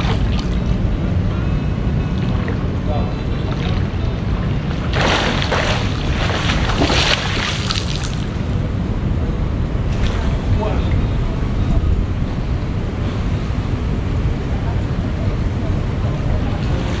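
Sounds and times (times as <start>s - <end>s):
swimming strokes splashing: 0.0s - 0.8s, 3.3s - 4.0s, 4.6s - 8.6s
steady low rumble: 0.0s - 17.0s.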